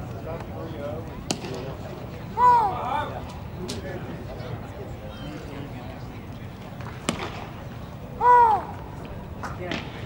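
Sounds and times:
low crowd chatter: 0:00.0 - 0:10.0.

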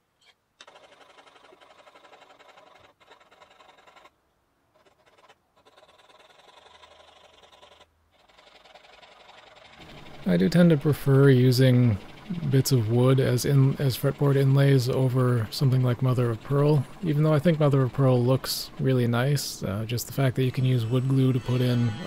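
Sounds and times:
fine saw rasping wood: 0:20.1 - 0:22.0.

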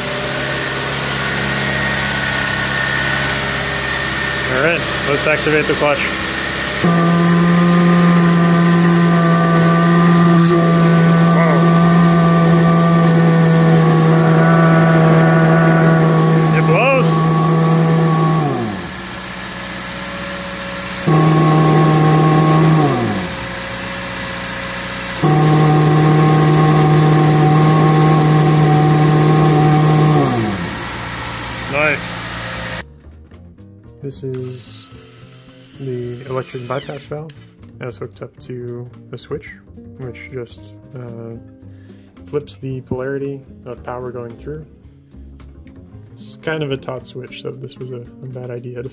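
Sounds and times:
car engine idling: 0:00.0 - 0:32.8
supercharger whining: 0:00.0 - 0:32.8, 0:34.4 - 0:37.0.

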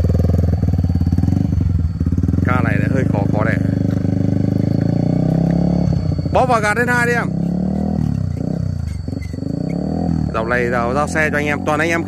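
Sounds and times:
motorcycle pulling away: 0:00.0 - 0:12.0.

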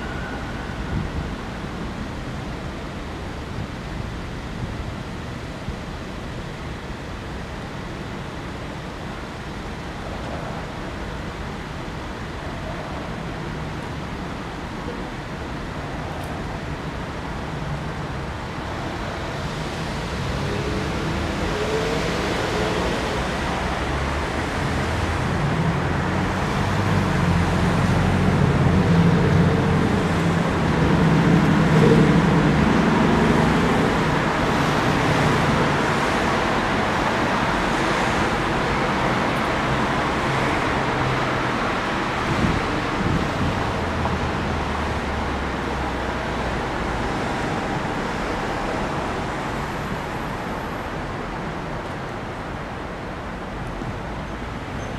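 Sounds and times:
traffic engine hum: 0:10.4 - 0:54.9.

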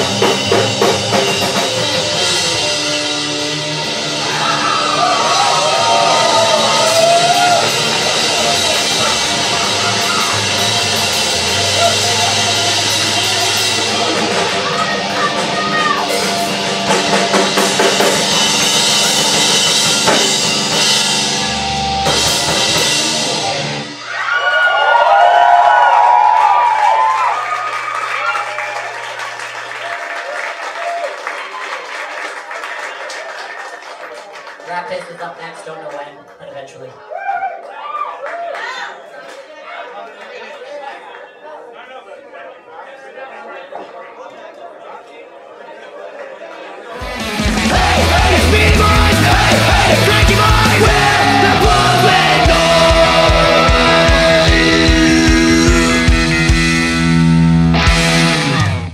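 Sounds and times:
pounding drums: 0:00.0 - 0:02.9, 0:05.2 - 0:24.0, 0:47.0 - 0:57.2
live heavy punk band: 0:00.0 - 0:26.3, 0:47.0 - 0:58.9
shouted vocals: 0:04.2 - 0:16.4, 0:47.0 - 0:56.0.

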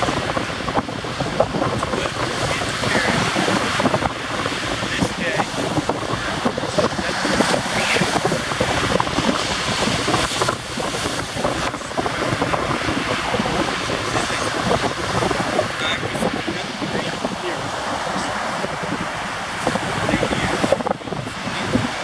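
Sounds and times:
surf washing: 0:00.0 - 0:22.0
wind buffeting microphone: 0:00.0 - 0:22.0.

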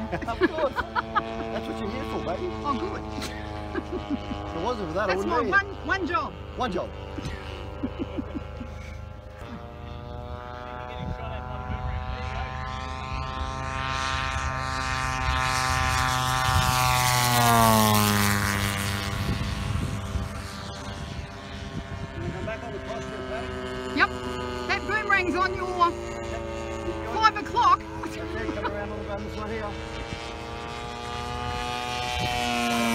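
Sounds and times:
model plane engine fly-by: 0:00.0 - 0:32.9.

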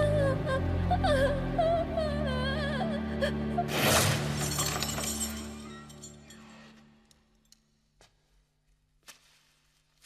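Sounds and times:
dramatic music score: 0:00.0 - 0:07.4
something brittle shattering: 0:03.7 - 0:06.1
falling pieces clinking: 0:04.1 - 0:06.5.

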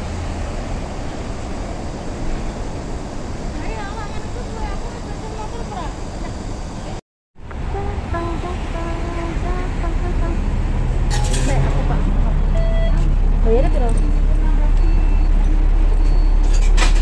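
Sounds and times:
bus engine rumbling: 0:00.0 - 0:17.0
street traffic: 0:00.0 - 0:17.0.

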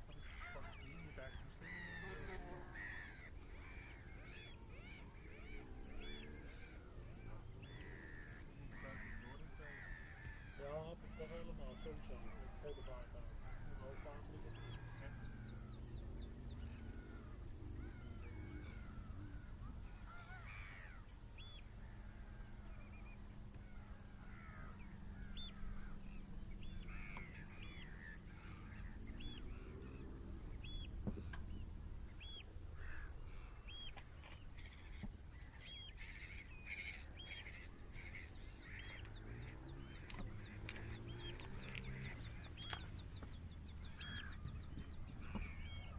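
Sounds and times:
gulls and shorebirds calling: 0:00.0 - 0:45.9
low steady hum: 0:00.0 - 0:45.9.

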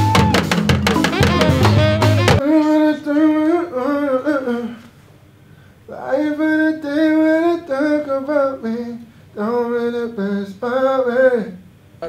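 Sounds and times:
music with drum beat and bass: 0:00.0 - 0:02.4
person singing wordless melody: 0:01.1 - 0:04.9.

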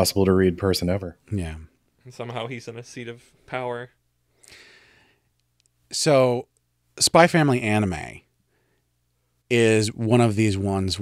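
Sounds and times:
person speaking: 0:00.0 - 0:04.0.

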